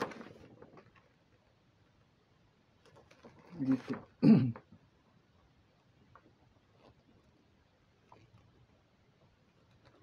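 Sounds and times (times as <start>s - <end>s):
man coughing: 4.2s - 4.6s.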